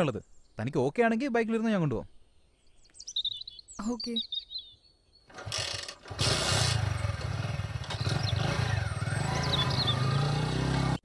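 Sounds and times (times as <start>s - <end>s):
bird chirps: 1.9s - 5.4s, 7.9s - 10.5s
motorbike engine idling: 5.3s - 10.2s.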